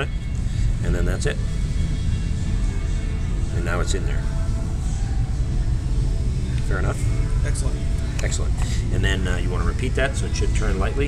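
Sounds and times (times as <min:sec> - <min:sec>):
faint steady hum: 0:00.0 - 0:11.0
low background rumble: 0:00.0 - 0:11.0.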